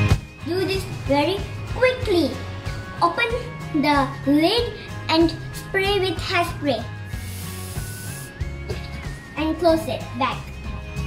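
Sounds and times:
background music: 0.0s - 11.0s
aerosol spray hiss: 7.0s - 8.4s.

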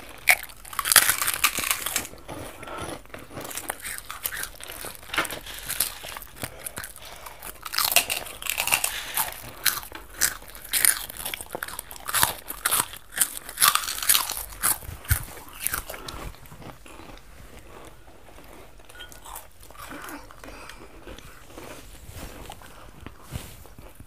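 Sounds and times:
crunching of crisp snacks: 0.0s - 24.0s.

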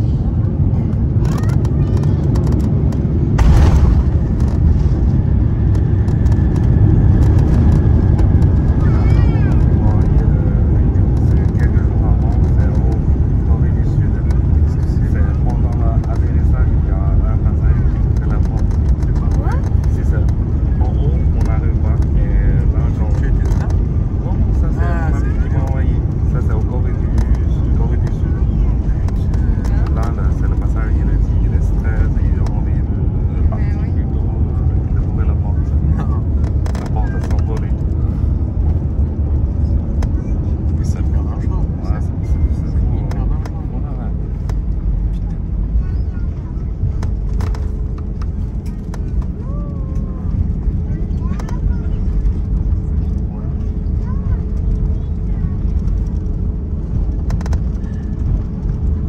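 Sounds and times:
aircraft cabin rumble: 0.0s - 59.0s
passengers murmuring: 0.0s - 59.0s.

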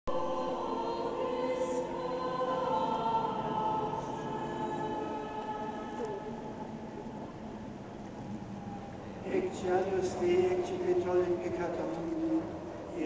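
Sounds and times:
choir singing long held notes: 0.1s - 7.1s.

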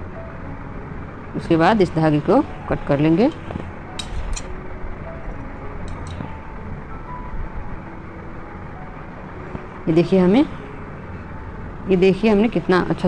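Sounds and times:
low background noise: 0.0s - 13.0s.

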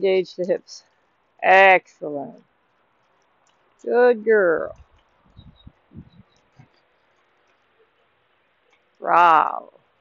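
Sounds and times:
faint outdoor background: 0.0s - 10.0s
soft low thuds: 4.6s - 6.7s.

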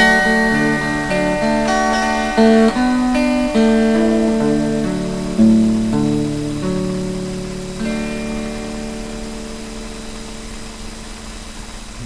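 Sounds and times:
clean electric guitar: 0.0s - 12.0s.

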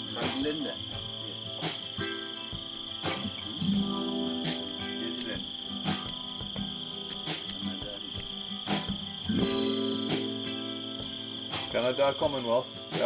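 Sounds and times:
insect drone: 0.0s - 13.0s
strummed acoustic guitar: 0.0s - 13.0s.

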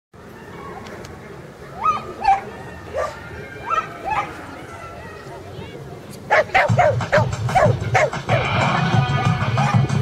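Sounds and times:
dog barking high-pitched: 6.3s - 8.2s.

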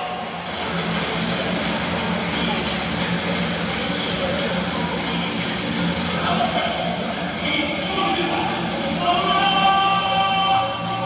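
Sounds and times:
music over stadium loudspeakers: 0.0s - 11.0s
announcer over loudspeakers: 7.4s - 11.0s.

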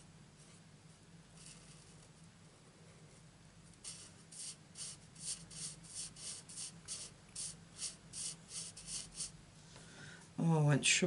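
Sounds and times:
marker nib rubbing on paper: 1.4s - 2.1s, 3.7s - 9.4s.

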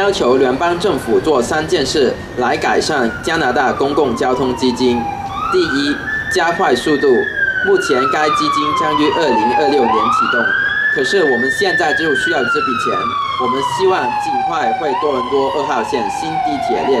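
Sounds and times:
emergency siren wailing: 0.0s - 17.0s.

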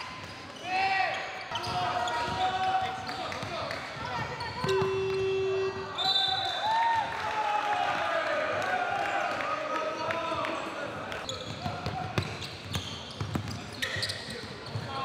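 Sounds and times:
sneakers squeaking on court: 0.0s - 6.2s, 11.2s - 15.0s
buzzer: 4.6s - 6.0s
basketball bouncing: 11.5s - 13.6s.

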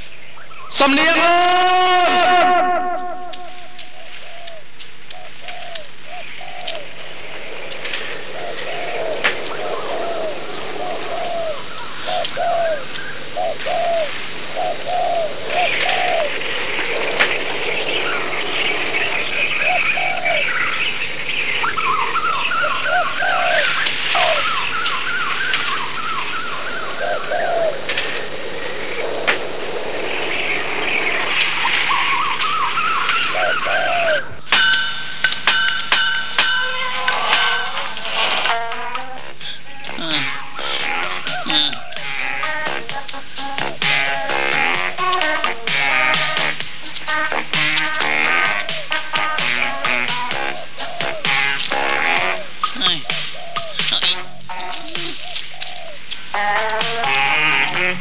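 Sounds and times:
birds chirping: 0.0s - 58.0s
doves cooing: 1.8s - 58.0s
quick rising bird notes: 1.8s - 58.0s.

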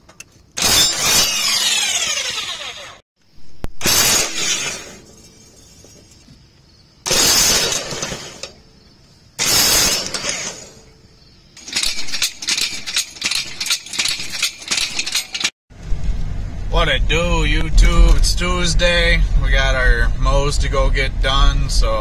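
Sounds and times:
cordless drill turning bolt: 0.6s - 3.0s.

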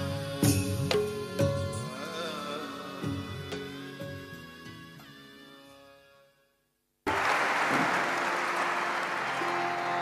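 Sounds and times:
audience applause: 7.1s - 10.0s.

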